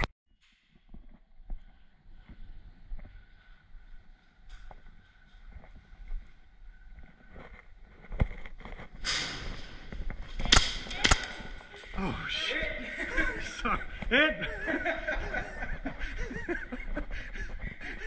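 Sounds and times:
soft footsteps on concrete: 0:00.7 - 0:09.0
airsoft pistol shot: 0:10.5 - 0:11.4.

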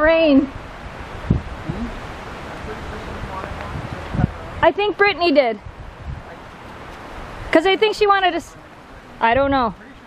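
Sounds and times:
gusty wind through pine trees: 0:00.0 - 0:10.0.

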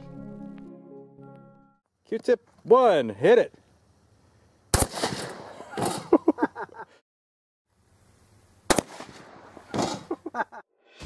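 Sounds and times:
shotgun firing: 0:04.7 - 0:06.0, 0:08.7 - 0:10.0.

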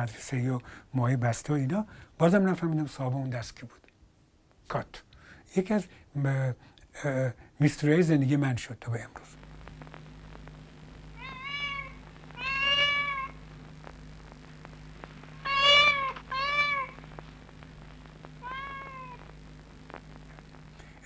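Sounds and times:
steady low hum: 0:09.0 - 0:21.0.

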